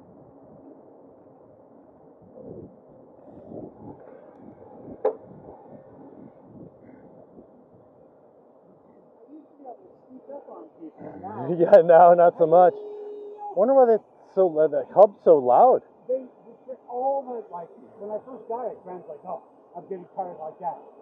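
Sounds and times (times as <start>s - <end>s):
wind and tyre rumble: 0.0s - 9.8s.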